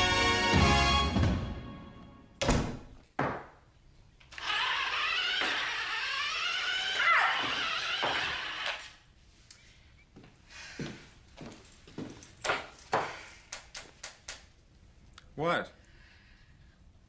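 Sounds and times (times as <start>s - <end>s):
door shutting thuds: 2.4s - 3.0s
toy car electric motor whining: 4.3s - 9.0s.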